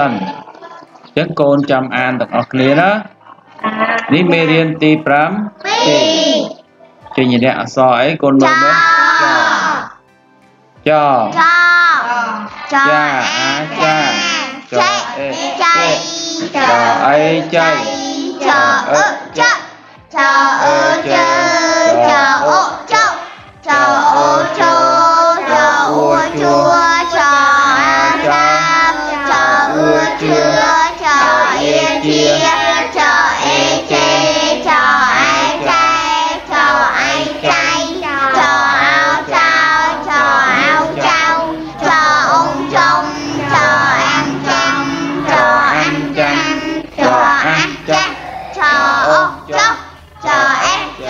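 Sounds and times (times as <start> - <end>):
children singing a chant: 4.0 - 6.6, 8.4 - 10.0, 11.2 - 51.0
backing track with bass line: 16.6 - 51.0.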